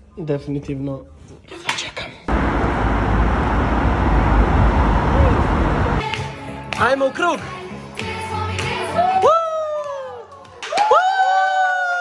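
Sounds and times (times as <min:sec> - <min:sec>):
city street traffic: 0:02.3 - 0:06.0.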